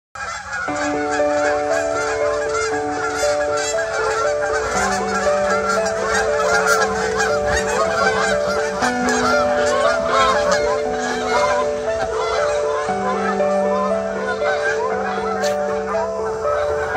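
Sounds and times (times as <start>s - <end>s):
geese honking in flight: 0.2s - 16.9s
soft music of held notes: 0.2s - 16.9s.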